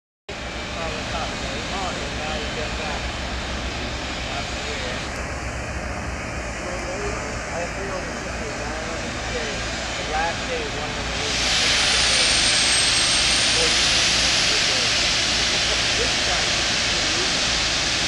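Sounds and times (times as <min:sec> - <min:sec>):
low rumble and hiss: 0:00.3 - 0:18.0.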